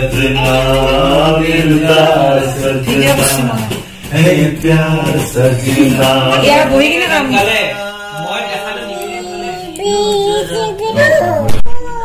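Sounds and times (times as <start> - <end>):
person singing film song: 0.0 - 12.0.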